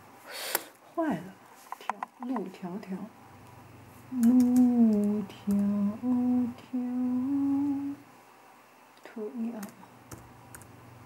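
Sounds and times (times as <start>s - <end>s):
woman humming: 4.1s - 8.0s.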